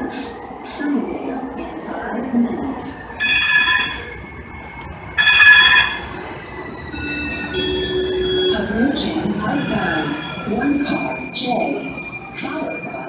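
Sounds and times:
train rolling rumble: 0:00.0 - 0:13.0
high-pitched ringing tones: 0:06.8 - 0:13.0
train wheels squealing: 0:06.8 - 0:13.0.

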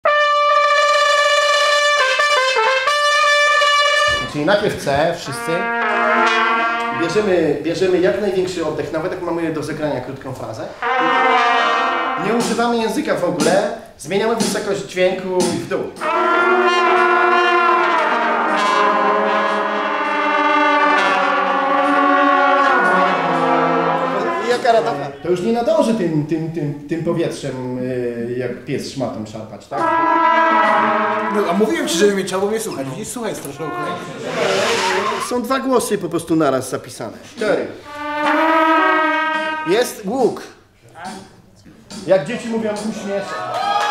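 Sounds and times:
trumpet playing: 0:00.0 - 0:07.6, 0:10.7 - 0:12.9, 0:16.0 - 0:25.3, 0:29.8 - 0:35.4, 0:37.8 - 0:40.1.

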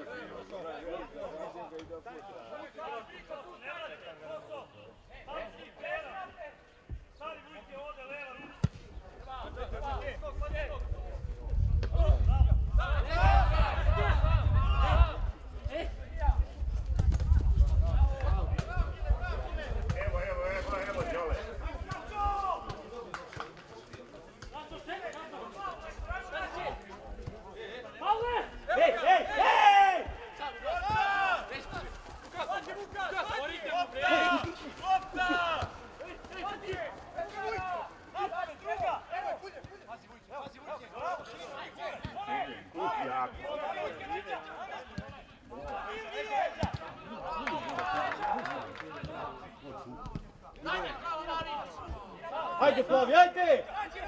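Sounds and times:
men shouting and calling: 0:00.0 - 0:16.4, 0:17.8 - 0:54.0.

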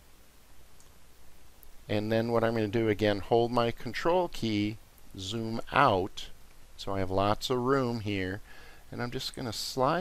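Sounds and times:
low steady hum: 0:00.0 - 0:10.0
man's voice: 0:01.9 - 0:10.0.

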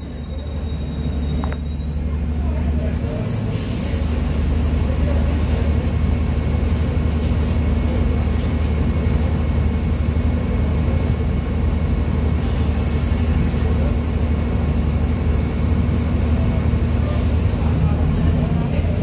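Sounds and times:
bus diesel engine droning: 0:00.0 - 0:19.0.

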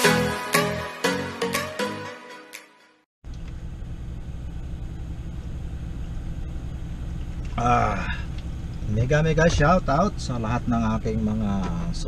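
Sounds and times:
car engine idling: 0:03.2 - 0:12.0.

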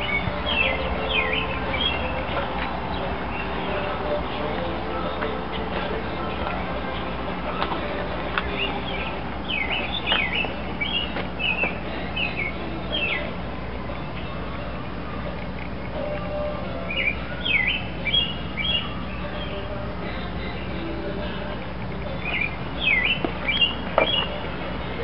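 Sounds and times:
low background hum: 0:00.0 - 0:25.0
small birds chirping: 0:00.0 - 0:25.0.

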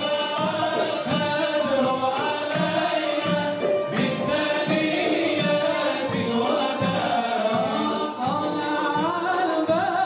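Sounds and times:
frame drum beating: 0:00.0 - 0:10.0
male choir singing: 0:00.0 - 0:10.0
man singing lead: 0:00.0 - 0:10.0.

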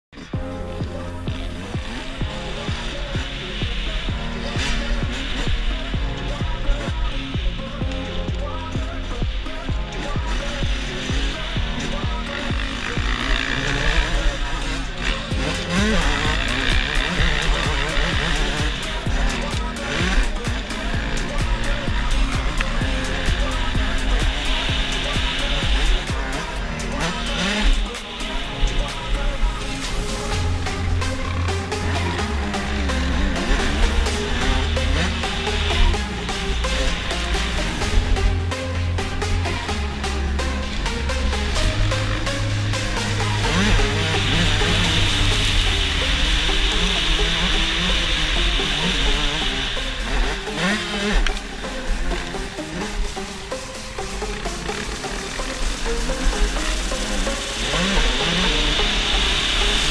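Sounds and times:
dirt bike engines: 0:00.1 - 0:59.9
music with steady beat: 0:00.1 - 0:59.9.

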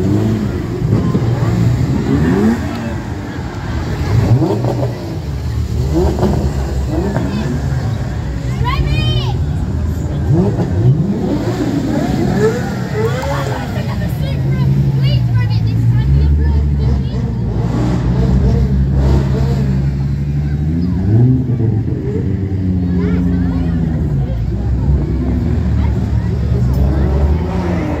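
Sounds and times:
crowd chatter: 0:00.0 - 0:28.0
engine revving: 0:00.0 - 0:28.0
sports car engines driving past: 0:00.0 - 0:28.0.

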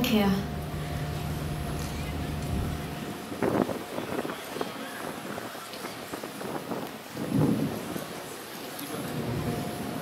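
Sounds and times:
outdoor background noise: 0:00.0 - 0:10.0.

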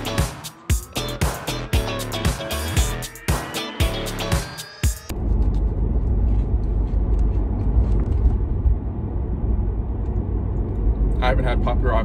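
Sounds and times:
upbeat music: 0:00.0 - 0:05.1
car cabin road and engine rumble: 0:05.1 - 0:12.0.

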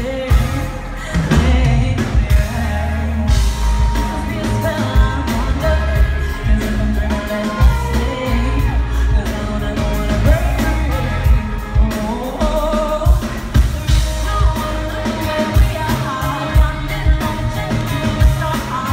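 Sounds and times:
live band playing: 0:00.0 - 0:18.9
steady drum beat: 0:00.0 - 0:18.9
woman singing into a microphone: 0:00.0 - 0:18.9.

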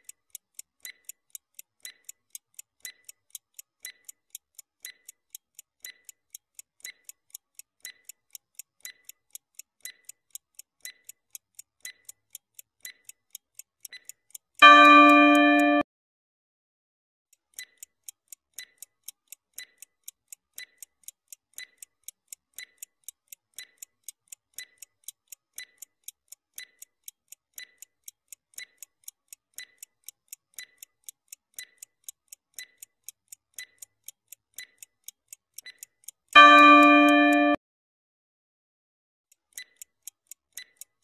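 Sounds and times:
clock ticking: 0:00.0 - 0:15.8, 0:17.3 - 0:37.6, 0:39.3 - 0:41.0
loud steady tone: 0:36.4 - 0:37.6.

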